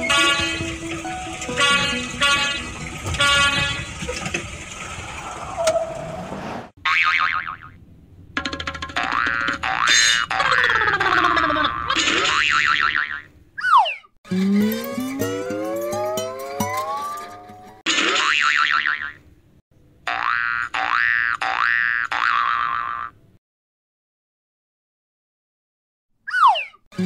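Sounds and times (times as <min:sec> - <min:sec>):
cheerful background music: 0:00.0 - 0:03.3, 0:14.3 - 0:17.8
cartoon springy boings: 0:06.8 - 0:07.8, 0:08.4 - 0:19.2, 0:20.1 - 0:23.2, 0:26.3 - 0:26.9
sliding cartoon tones: 0:08.9 - 0:19.1, 0:26.3 - 0:27.0.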